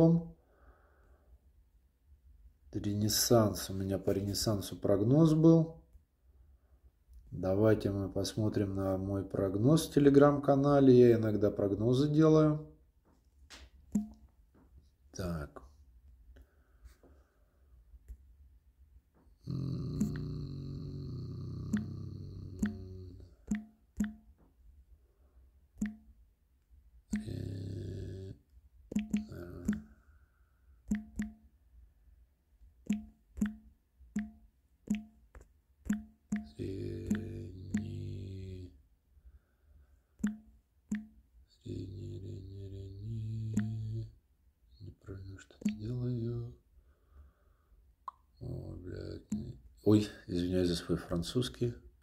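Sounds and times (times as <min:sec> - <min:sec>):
phone keyboard taps: 0:28.9 - 0:29.9
sharp click: 0:28.9 - 0:29.9, 0:30.9 - 0:31.5
low drawn-out voice-like sound: 0:41.7 - 0:44.1.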